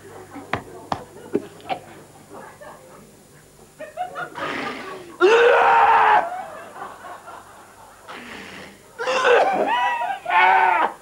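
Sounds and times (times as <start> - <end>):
man's loud strained cry: 5.2 - 6.3, 9.0 - 11.0.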